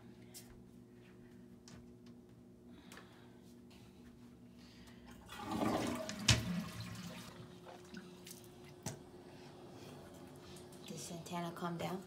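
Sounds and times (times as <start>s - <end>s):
toilet flushing: 5.1s - 8.8s.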